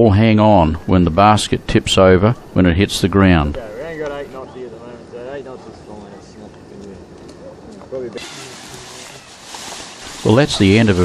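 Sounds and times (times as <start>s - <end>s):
steady hiss: 0.1s - 11.0s
faint voices talking: 0.6s - 11.0s.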